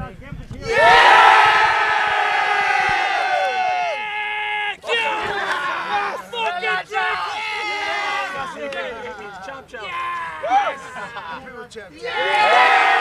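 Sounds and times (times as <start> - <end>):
players shouting and cheering: 0.6 - 13.0.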